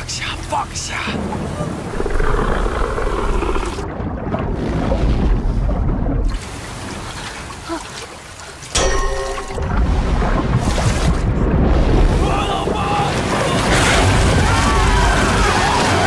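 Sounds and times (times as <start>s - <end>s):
churning water: 0.0s - 16.0s
deep rumble: 1.2s - 6.4s, 9.6s - 16.0s.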